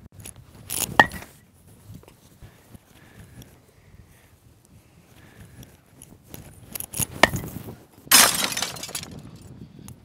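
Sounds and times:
window glass shattering: 0:08.1 - 0:09.1.

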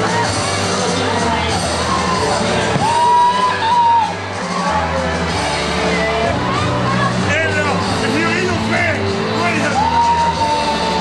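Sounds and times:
crowd voices and shouts: 0:00.0 - 0:11.0
loud amplified music: 0:00.0 - 0:11.0
low bass notes: 0:00.0 - 0:11.0.

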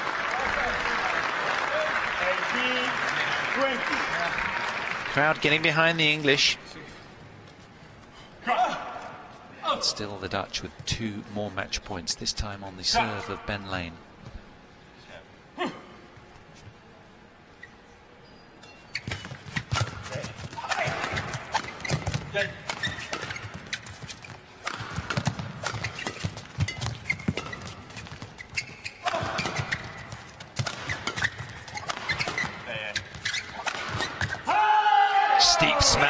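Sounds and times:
footwork on court: 0:19.0 - 0:36.0
crowd shouting and cheering: 0:34.4 - 0:36.0.

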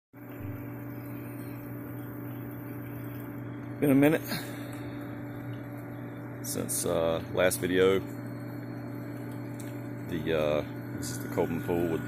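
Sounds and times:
pool pump motor humming: 0:00.2 - 0:12.0
water circulating: 0:00.2 - 0:12.0.

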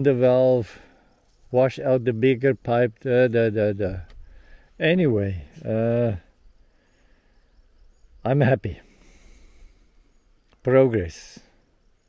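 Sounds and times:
man saying uh: 0:04.8 - 0:06.3.

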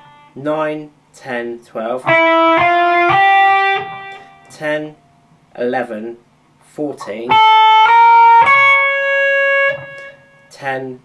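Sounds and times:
electric guitar sustained notes: 0:02.1 - 0:04.6, 0:07.3 - 0:10.5.

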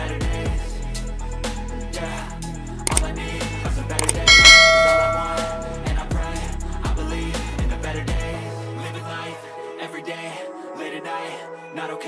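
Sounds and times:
hip-hop music: 0:03.8 - 0:08.1
bright bell ding: 0:04.0 - 0:05.9.

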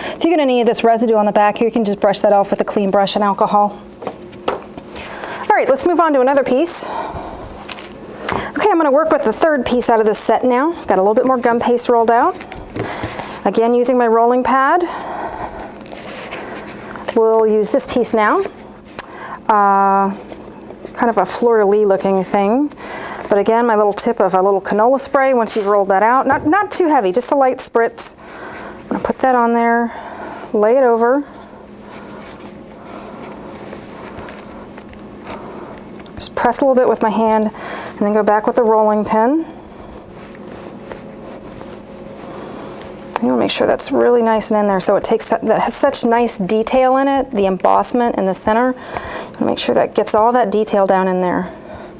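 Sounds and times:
plastic sheet rustling and scraping: 0:15.8 - 0:17.2.

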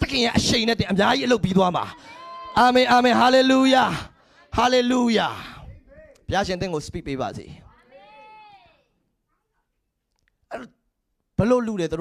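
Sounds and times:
man speaking into microphone: 0:00.0 - 0:02.0, 0:02.6 - 0:07.7, 0:11.4 - 0:12.0.

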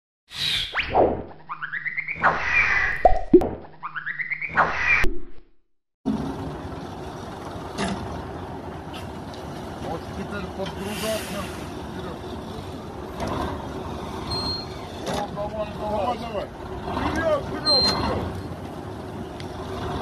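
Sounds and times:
tractor engine running: 0:06.1 - 0:10.9, 0:11.8 - 0:20.0.

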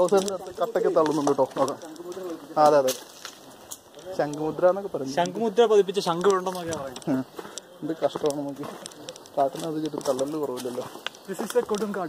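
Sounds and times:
man talking: 0:00.0 - 0:12.0.

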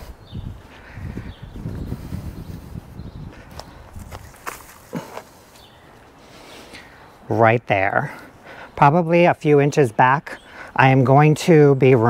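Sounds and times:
footsteps on grass: 0:01.6 - 0:06.5.

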